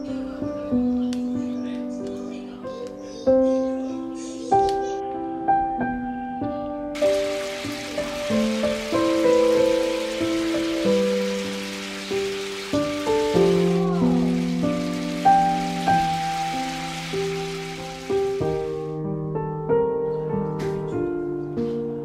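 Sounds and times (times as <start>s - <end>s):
soft piano music: 0.0s - 22.0s
water splashing into sink: 7.0s - 18.8s.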